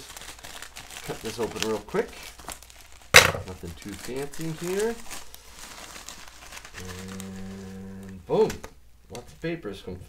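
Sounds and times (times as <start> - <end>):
plastic mailer tearing and crinkling: 0.0 - 8.6.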